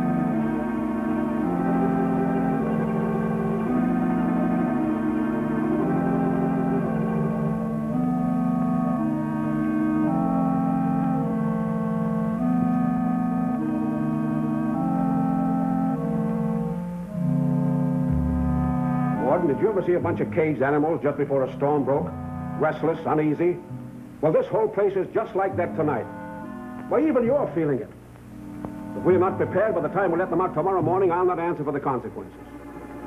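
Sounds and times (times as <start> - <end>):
deep bass organ note: 0.0 - 33.0
organ chords: 0.0 - 33.0.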